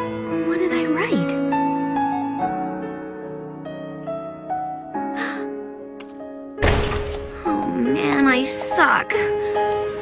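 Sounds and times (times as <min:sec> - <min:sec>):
soft sad background music: 0:00.0 - 0:10.0
loud deep thud: 0:06.6 - 0:07.3
voice: 0:07.5 - 0:09.2.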